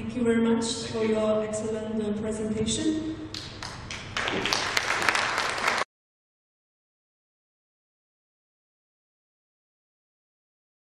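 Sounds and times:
audience applause: 3.6s - 5.9s.

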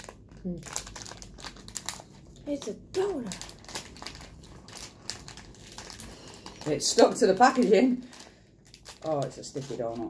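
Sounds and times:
wrapper crinkling: 0.0s - 10.0s.

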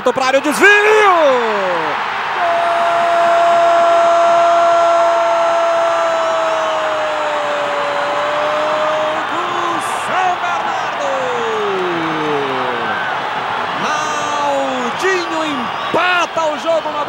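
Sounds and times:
stadium crowd noise: 0.0s - 17.0s.

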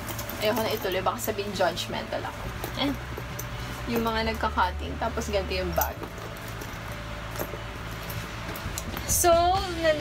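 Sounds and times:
handling of canvas backpack: 0.0s - 1.6s, 5.7s - 9.3s
steady low hum: 0.0s - 10.0s.

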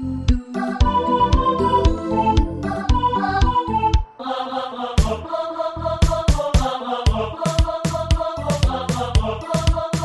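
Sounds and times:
bass and kick drum: 0.3s - 4.1s, 5.0s - 5.2s, 6.0s - 10.0s
choir-like synth voices and pads: 0.6s - 10.0s.

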